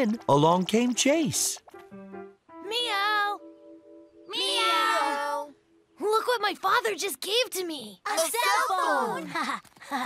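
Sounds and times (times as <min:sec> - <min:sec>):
background music: 0:00.0 - 0:08.7.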